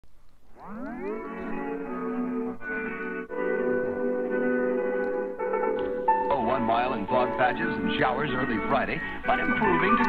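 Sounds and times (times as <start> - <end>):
rising pitch sweep: 0.5 - 2.6.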